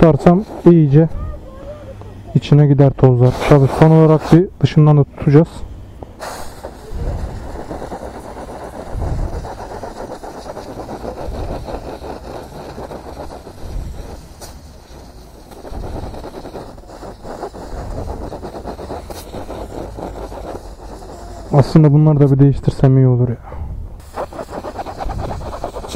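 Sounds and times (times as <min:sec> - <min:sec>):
compressed air rushing through filter: 0:00.0 - 0:22.9, 0:23.6 - 0:25.9.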